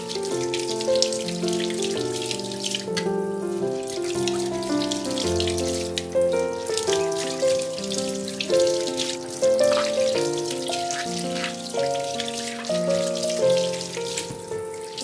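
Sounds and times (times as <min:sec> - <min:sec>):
background piano music: 0:00.0 - 0:15.0
tap water running into sink: 0:00.0 - 0:15.0.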